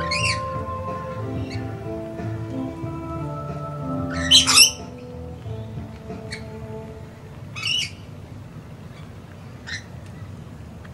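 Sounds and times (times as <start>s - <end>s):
lorikeet screech: 0.0s - 1.8s, 4.1s - 4.9s
background music with held notes: 0.0s - 8.3s.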